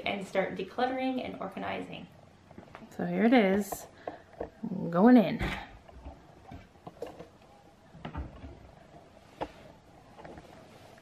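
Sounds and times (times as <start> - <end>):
cabinet doors clicking and knocking: 8.0 - 9.0.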